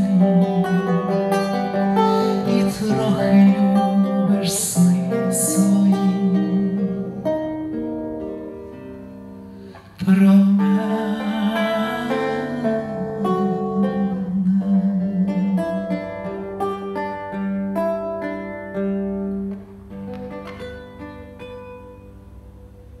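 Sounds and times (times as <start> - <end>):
man singing: 0.0 - 7.2, 10.0 - 16.2
acoustic guitar: 0.0 - 23.0.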